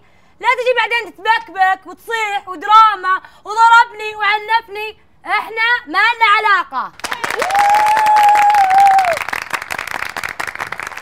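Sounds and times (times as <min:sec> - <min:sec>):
audience clapping: 0:07.0 - 0:11.0.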